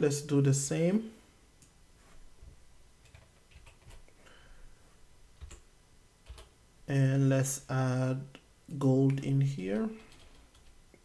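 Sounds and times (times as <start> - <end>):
computer keyboard clicks: 3.0 - 4.0, 6.2 - 6.5, 10.0 - 10.8.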